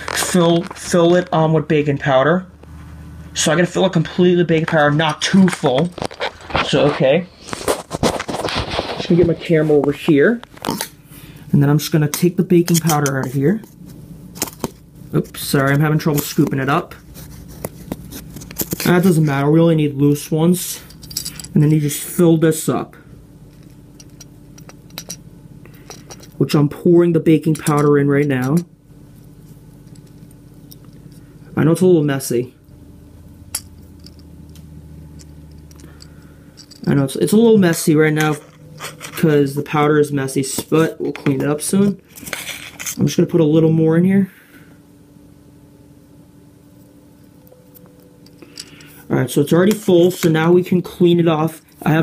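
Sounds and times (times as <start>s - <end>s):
faint steady hum: 0.0s - 52.0s.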